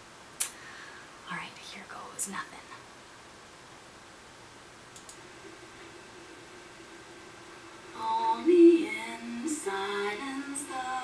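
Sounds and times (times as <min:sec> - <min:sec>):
woman whispering: 0:01.2 - 0:02.9.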